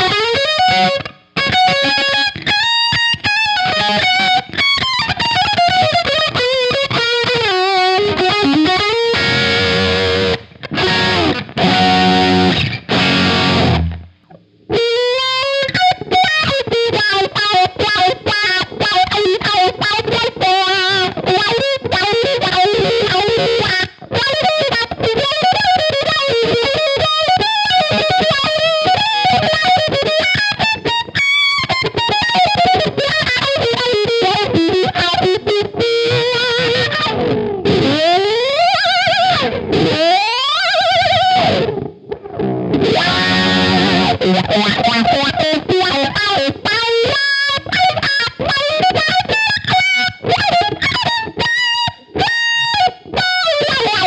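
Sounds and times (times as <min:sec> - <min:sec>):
distorted electric guitar lead: 0:00.0 - 0:54.0.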